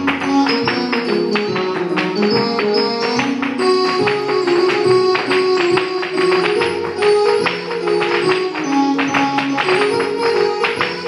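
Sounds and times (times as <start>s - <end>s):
folk dance tune: 0.0s - 11.0s
hard shoes tapping on floor: 0.0s - 11.0s.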